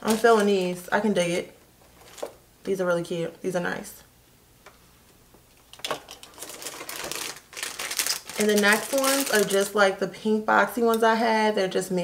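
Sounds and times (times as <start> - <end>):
sunglasses handling clicks and rustling: 5.5 - 9.6.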